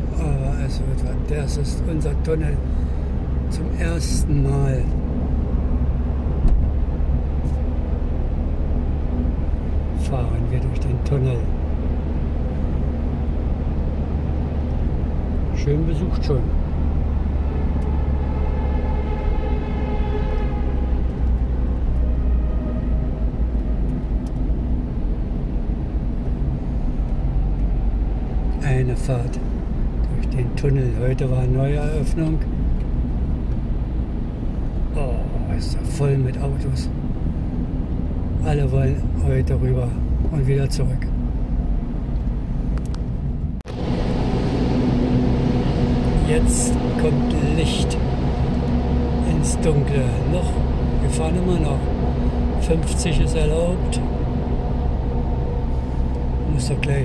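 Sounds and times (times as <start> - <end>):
car road rumble in tunnel: 0.0 - 57.0
faint whine: 42.8 - 57.0.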